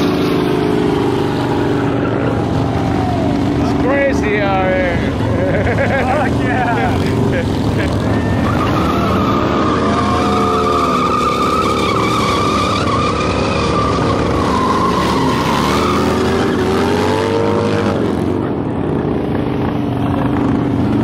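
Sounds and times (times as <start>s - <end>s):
tyre screeching on asphalt: 0.0s - 3.9s, 6.1s - 18.2s
motorcycle engine revving: 0.0s - 21.0s.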